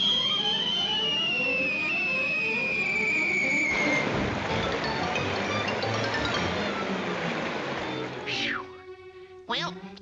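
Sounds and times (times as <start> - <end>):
cartoon falling whistle: 0.0 - 4.1
orchestral music: 1.6 - 10.0.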